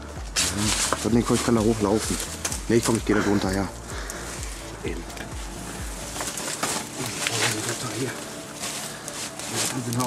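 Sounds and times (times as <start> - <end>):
twigs rustling and crackling: 0.0 - 10.0.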